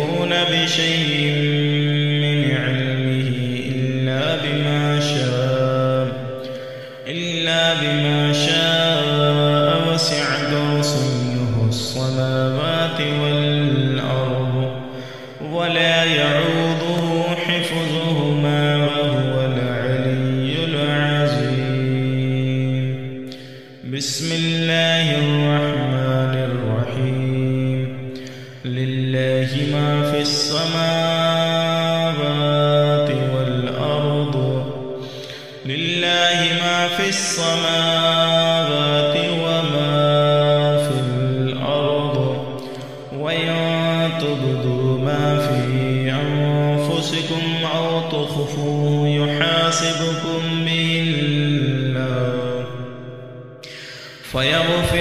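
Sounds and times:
man chanting recitation: 0:00.0 - 0:55.0.

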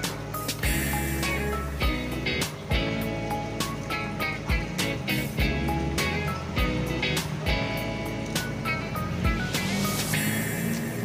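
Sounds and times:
background music with chords: 0:00.0 - 0:11.0.

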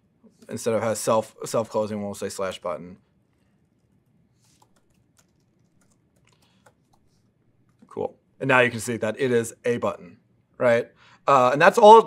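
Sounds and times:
laptop keyboard keystrokes: 0:04.4 - 0:07.1.

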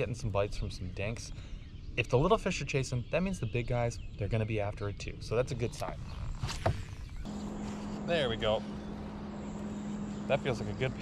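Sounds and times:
steady low hum: 0:06.6 - 0:11.0.

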